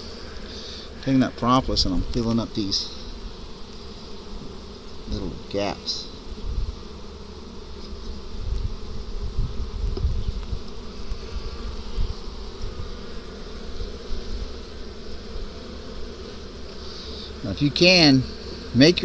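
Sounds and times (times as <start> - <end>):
honeybees buzzing: 0.0 - 19.0.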